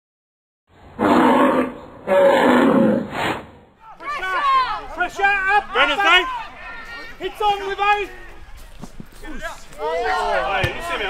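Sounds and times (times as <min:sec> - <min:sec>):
bull bellowing: 0:01.0 - 0:03.2.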